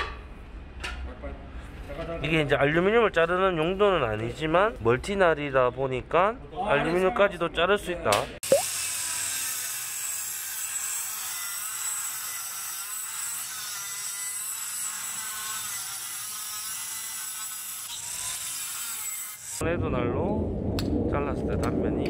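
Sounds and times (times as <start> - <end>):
angle grinder cutting steel: 8.6 - 19.6.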